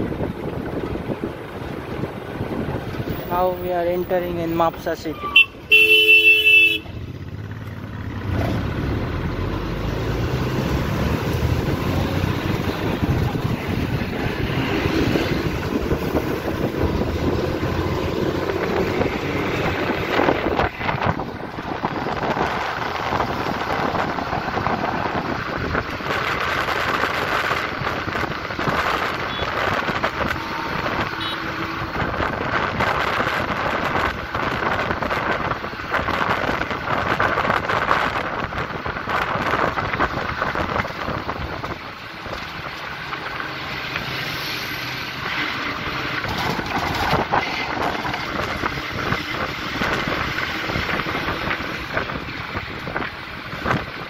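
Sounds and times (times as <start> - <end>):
wind on microphone: 0.0 - 5.4, 8.5 - 43.4, 45.1 - 54.0
bus engine and tyre noise: 0.0 - 54.0.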